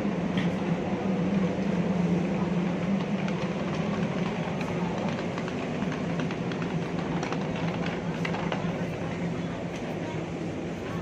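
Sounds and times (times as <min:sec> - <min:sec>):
busy street market noise: 0:00.0 - 0:11.0.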